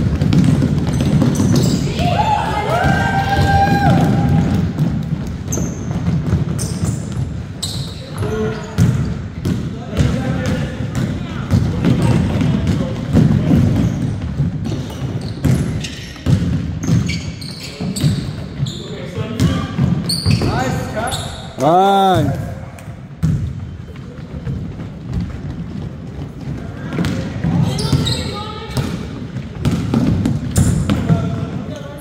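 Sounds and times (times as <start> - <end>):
basketball bouncing on hardwood floor: 0.0 - 1.9, 2.8 - 7.4, 8.2 - 18.4, 23.2 - 31.6
chatter of players and spectators: 0.0 - 32.0
sneakers squeaking: 0.0 - 32.0.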